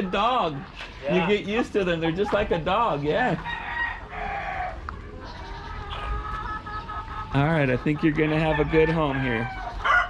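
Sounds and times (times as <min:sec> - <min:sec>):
chickens calling: 0:00.0 - 0:10.0.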